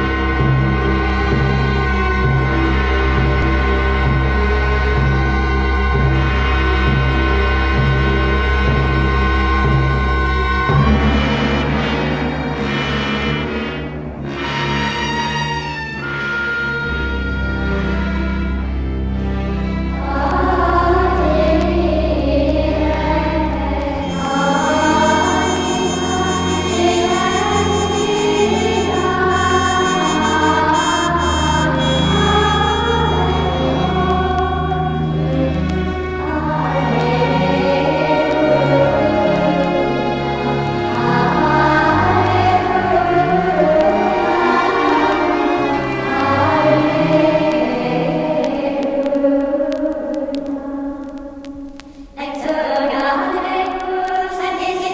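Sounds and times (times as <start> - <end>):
choir singing sustained chords: 19.2 - 51.2.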